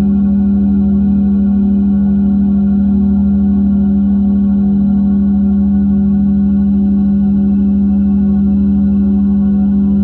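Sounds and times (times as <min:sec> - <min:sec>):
pulsing bass throb: 0:00.0 - 0:10.0.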